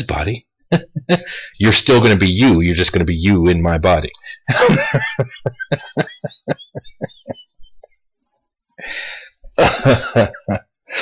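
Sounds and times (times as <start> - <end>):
man laughing: 0.7 - 1.5, 4.2 - 8.0, 9.5 - 11.0.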